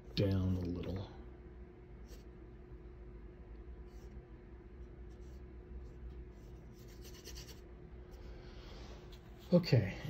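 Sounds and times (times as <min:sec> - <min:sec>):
paintbrush strokes on canvas: 0:04.8 - 0:07.7.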